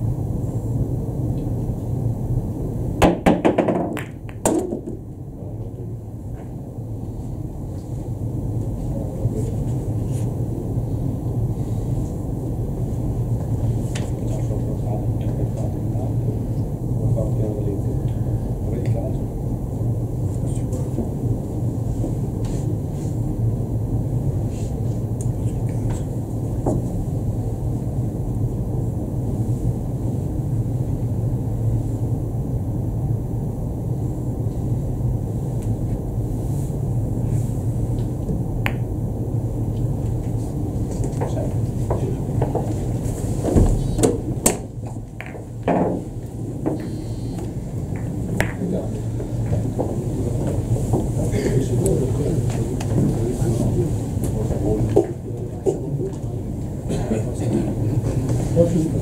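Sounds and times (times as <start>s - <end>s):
low hall hum: 0.0s - 59.0s
billiard balls clicking: 3.1s - 4.9s, 45.1s - 45.8s.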